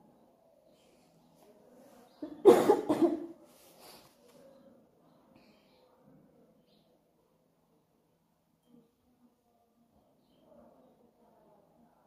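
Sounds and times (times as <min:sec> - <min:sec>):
woman coughing: 0:02.3 - 0:03.3.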